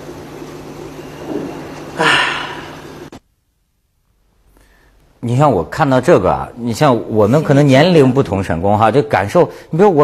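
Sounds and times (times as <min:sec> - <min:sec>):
background hiss: 0:00.0 - 0:07.8
low electrical hum: 0:00.0 - 0:10.0.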